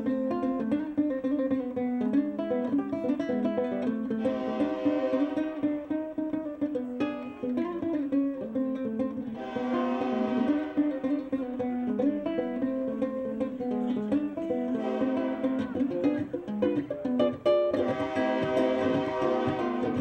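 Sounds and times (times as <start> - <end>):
ukulele playing: 0.0 - 20.0.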